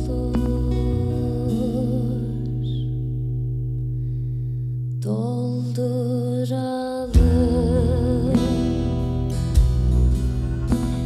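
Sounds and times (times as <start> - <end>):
upright double bass: 0.0 - 4.2, 7.2 - 11.0
acoustic guitar: 0.0 - 11.0
live acoustic band music: 7.2 - 11.0.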